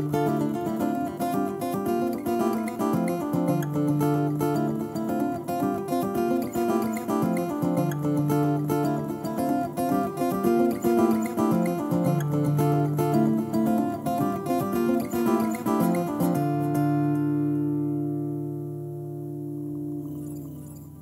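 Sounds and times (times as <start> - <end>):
layered acoustic guitar: 0.0 - 21.0.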